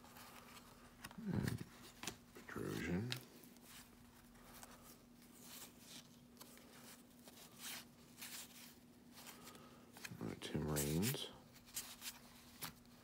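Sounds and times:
paper cards rustling: 0.0s - 13.0s
person humming: 1.2s - 1.7s.

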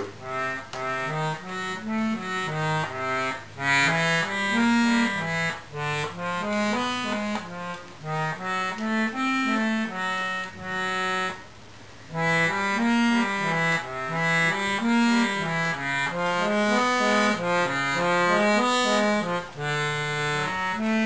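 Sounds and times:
accordion bass line: 0.0s - 21.0s.

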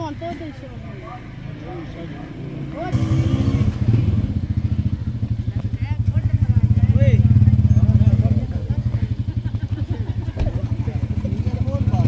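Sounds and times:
faint voices: 4.6s - 12.0s.

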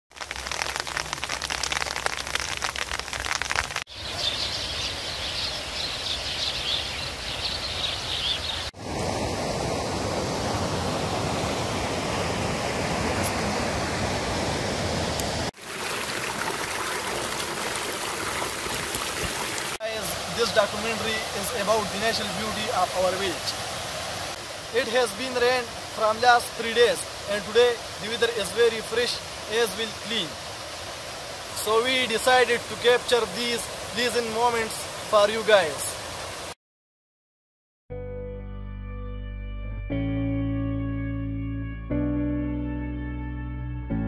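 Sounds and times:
flowing water rushing: 0.2s - 36.6s.

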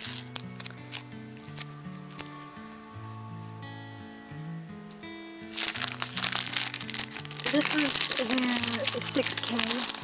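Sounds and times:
plastic bag crinkling: 0.0s - 2.3s, 5.5s - 10.0s
background music: 0.0s - 10.0s.

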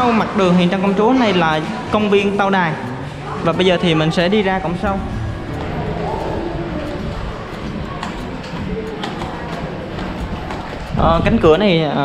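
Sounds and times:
faint voices: 0.0s - 12.0s
music with sustained tones: 2.7s - 10.5s.

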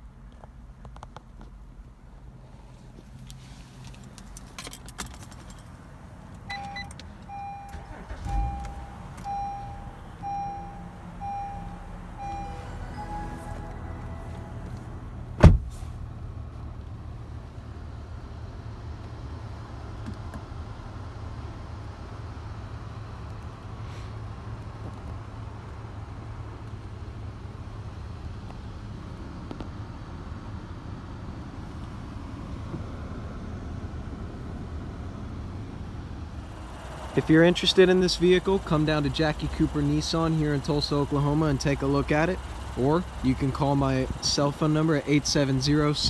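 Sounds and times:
car engine idling: 0.8s - 46.0s
car warning chime beeping: 6.5s - 15.2s
short chime: 11.5s - 14.8s
sharp thump: 15.4s - 15.8s.

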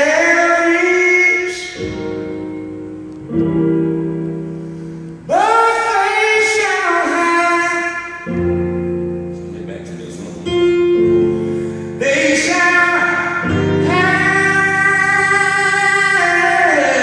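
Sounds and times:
man singing gospel-style: 0.0s - 2.0s, 5.3s - 8.6s, 9.7s - 17.0s
electronic keyboard chords: 0.0s - 17.0s.

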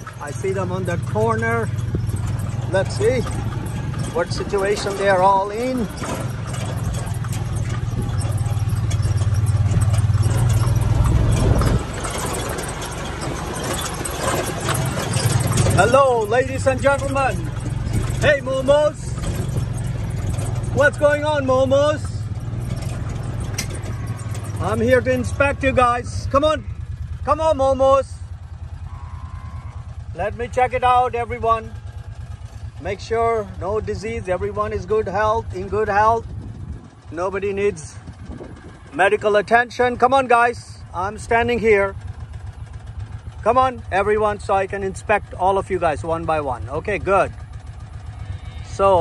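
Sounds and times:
light rattling over rough ground: 0.0s - 49.0s
utility vehicle engine running: 0.0s - 49.0s.

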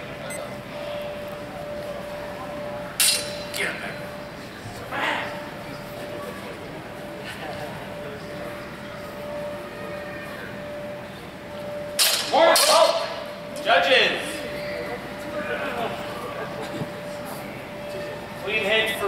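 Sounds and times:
steady hum: 0.0s - 19.0s
swords clashing: 3.0s - 3.6s, 12.0s - 13.0s.

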